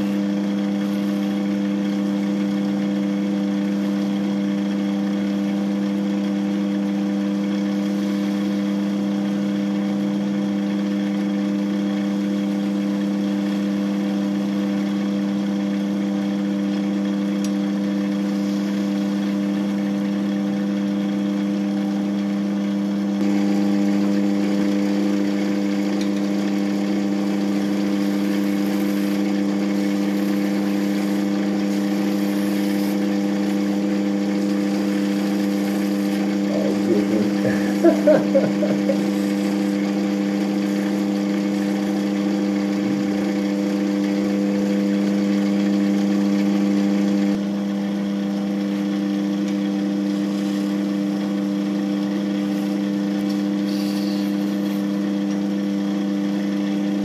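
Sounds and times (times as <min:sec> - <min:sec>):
turning tool shaving carrot: 0:00.0 - 0:22.2, 0:23.2 - 0:57.0
lathe humming: 0:00.0 - 0:57.0.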